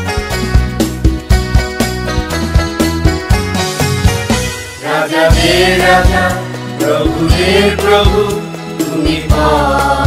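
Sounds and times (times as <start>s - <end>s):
worship song with bass and drums: 0.0s - 10.0s.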